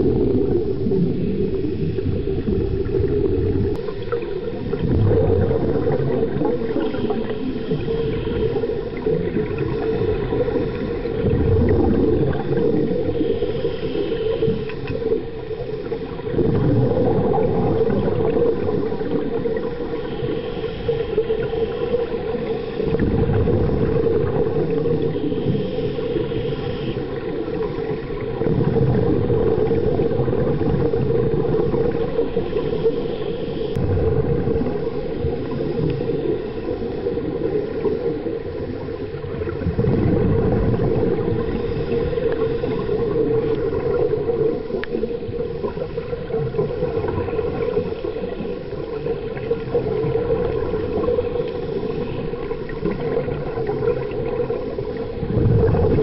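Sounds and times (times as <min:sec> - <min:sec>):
muffled underwater rumble: 0:00.0 - 0:56.0.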